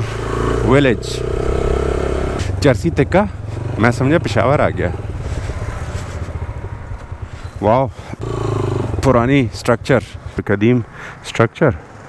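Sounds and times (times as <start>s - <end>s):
motorcycle engine at low revs: 0.0s - 11.2s.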